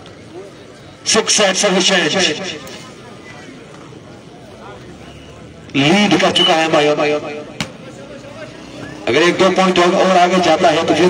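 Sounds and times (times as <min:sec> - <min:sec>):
male commentator speaking: 0:01.0 - 0:02.7, 0:05.7 - 0:11.0.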